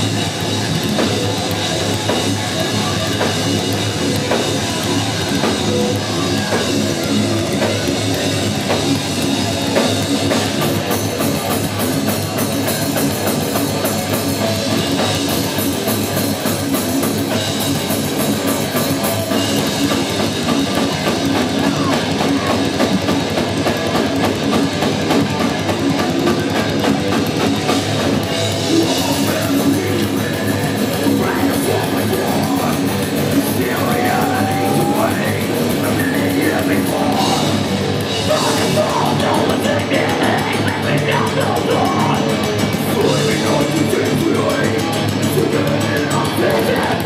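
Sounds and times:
distorted electric guitars: 0:00.0 - 0:47.0
drum kit with cymbals: 0:00.0 - 0:47.0.

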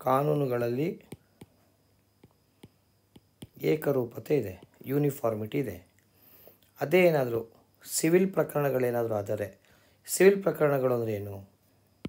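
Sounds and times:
man talking: 0:00.0 - 0:01.2, 0:03.6 - 0:05.9, 0:06.8 - 0:11.5
stylus tapping pen tablet: 0:01.0 - 0:01.6, 0:02.2 - 0:05.2.

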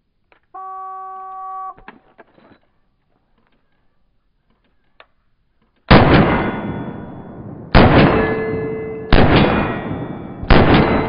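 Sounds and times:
handgun shots: 0:09.1 - 0:11.0.

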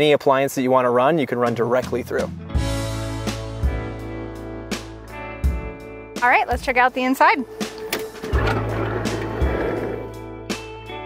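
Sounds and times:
background music with steady beat: 0:01.5 - 0:11.0
sliding van door rolling open: 0:07.6 - 0:10.2.

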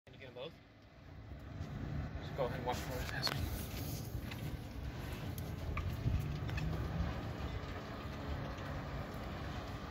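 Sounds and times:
low rumble: 0:00.9 - 0:09.9.

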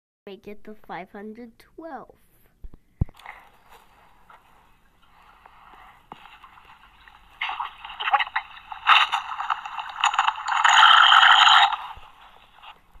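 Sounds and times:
harsh crackling sped-up soundtrack: 0:05.0 - 0:13.0.

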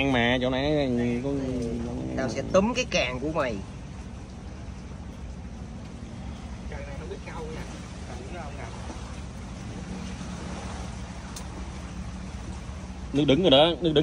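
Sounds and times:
engine rumble: 0:00.0 - 0:14.0.

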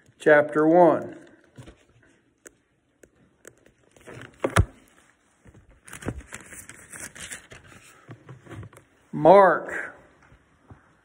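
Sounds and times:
thin pages rustling: 0:03.6 - 0:09.0.

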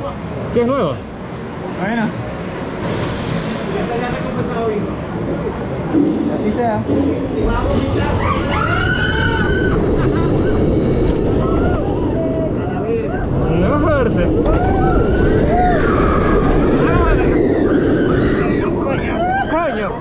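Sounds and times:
roller coaster rumbling: 0:00.0 - 0:20.0
wind on microphone: 0:09.2 - 0:20.0.

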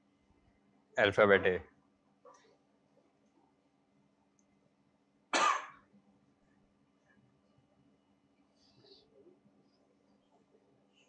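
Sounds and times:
loud cough: 0:05.3 - 0:05.8.

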